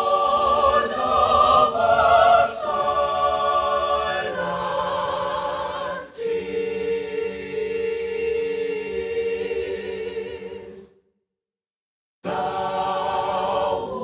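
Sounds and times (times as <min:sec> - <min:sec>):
mixed choir singing: 0:00.0 - 0:11.0, 0:12.2 - 0:14.0.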